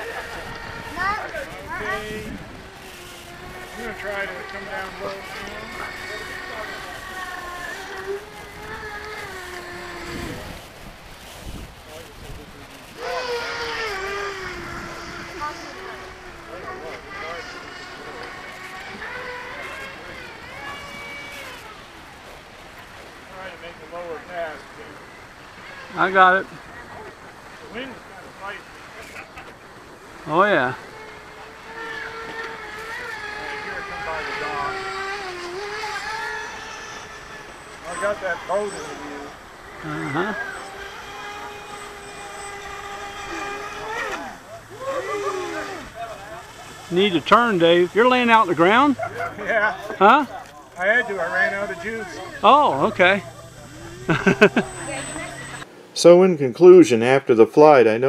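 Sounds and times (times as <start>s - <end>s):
wind rush: 0.0s - 3.8s, 8.3s - 12.9s
electric motor propeller whine: 0.0s - 56.0s.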